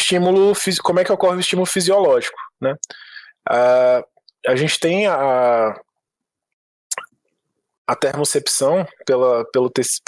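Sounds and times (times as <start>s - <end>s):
man's voice: 0.0s - 5.8s, 7.9s - 10.0s.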